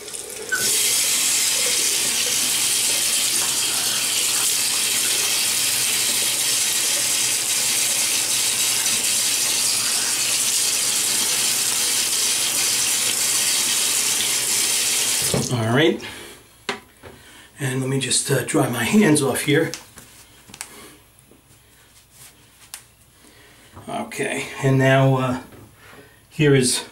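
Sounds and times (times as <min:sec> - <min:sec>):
tap running into sink: 0:00.1 - 0:14.3, 0:15.0 - 0:15.5.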